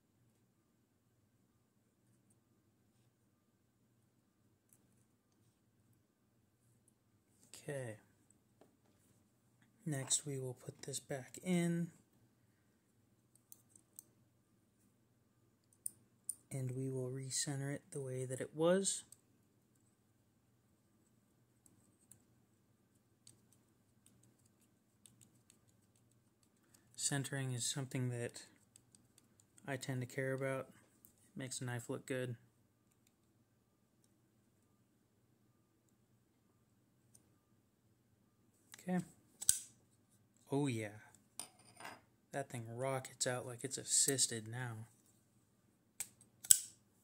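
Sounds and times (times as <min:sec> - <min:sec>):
folding knife click: 0:39.4 - 0:39.7, 0:46.0 - 0:46.8
knife blade snapping open: 0:46.4 - 0:46.7.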